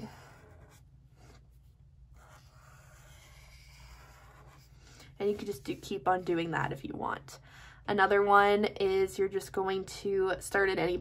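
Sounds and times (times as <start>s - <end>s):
marker scratching on paper: 0.0s - 6.5s.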